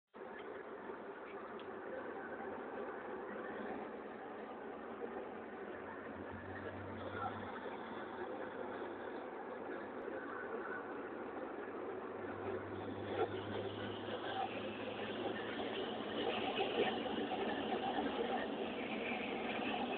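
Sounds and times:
car engine and road noise: 0:00.2 - 0:19.9
low hum: 0:00.2 - 0:19.9.

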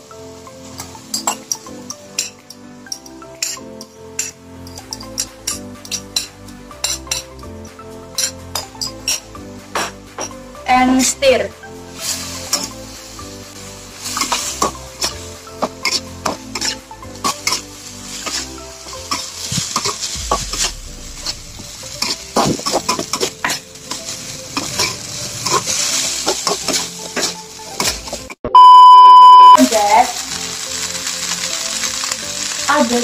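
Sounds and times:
noodles sizzling in a wok: 0:00.0 - 0:28.4, 0:29.6 - 0:33.0
metal spatula scraping pan: 0:14.2 - 0:20.1
loud steady beep: 0:28.5 - 0:29.6.

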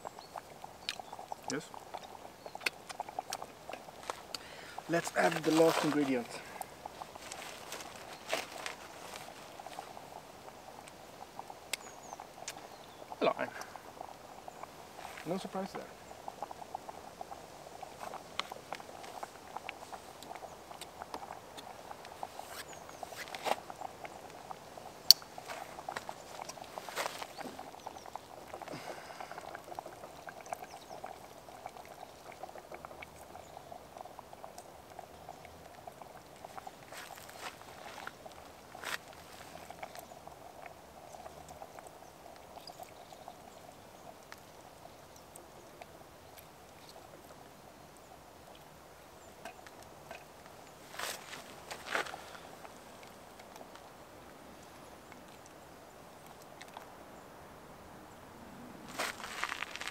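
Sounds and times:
soup bubbling in a pot: 0:00.0 - 0:59.9.

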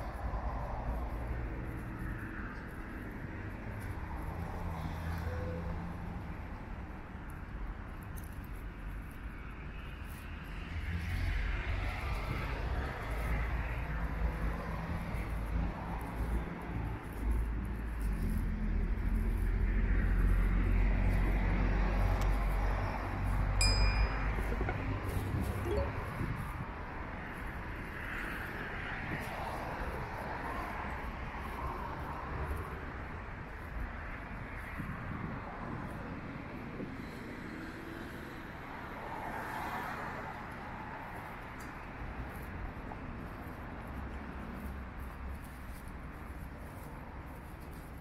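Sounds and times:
road traffic rumble: 0:00.0 - 0:48.0
high bell-like ping: 0:23.6 - 0:26.1.

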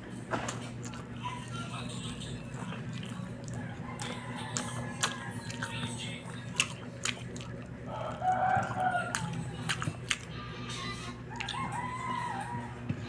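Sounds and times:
steady low hum: 0:00.0 - 0:13.0
rooster crowing: 0:03.6 - 0:05.9, 0:07.9 - 0:09.5, 0:11.3 - 0:13.0.

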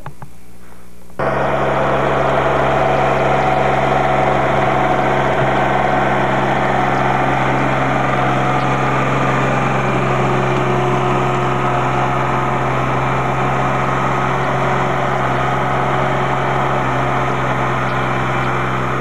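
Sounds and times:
tractor engine running: 0:01.1 - 0:19.0.

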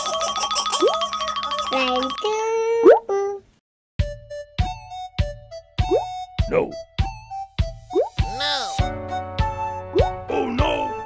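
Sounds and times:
held cartoon tone: 0:08.3 - 0:08.8.

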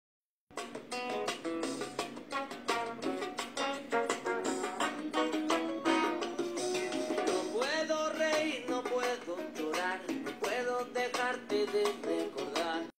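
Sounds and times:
song through small speakers: 0:00.6 - 0:12.9.

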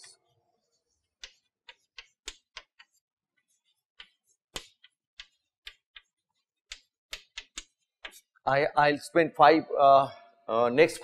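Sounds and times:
chalk clicking on blackboard: 0:00.0 - 0:08.4.

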